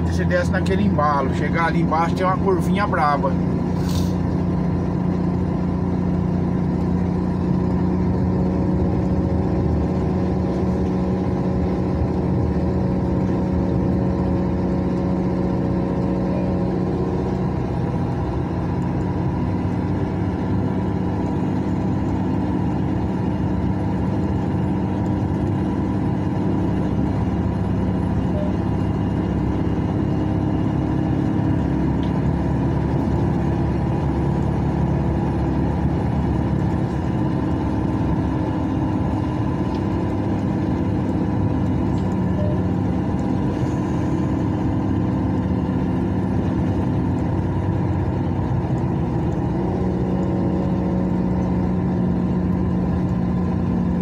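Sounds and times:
vehicle engine hum: 0:00.0 - 0:54.0.

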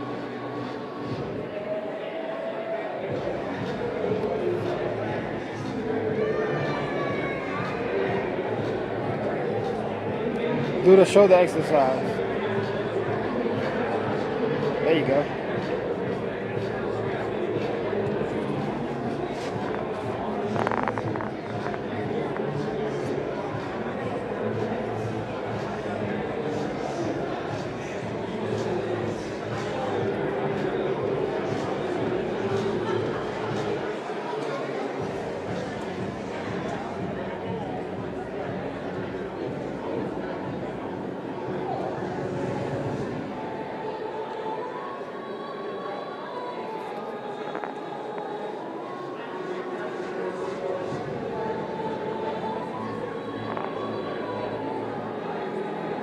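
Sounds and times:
busy room din: 0:00.0 - 0:56.0
chatter of many voices: 0:00.0 - 0:56.0.

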